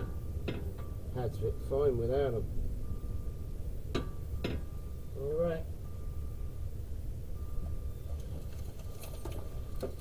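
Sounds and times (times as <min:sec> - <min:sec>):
faint thin steady tone: 0:00.0 - 0:10.0
steady low rumble: 0:00.0 - 0:10.0.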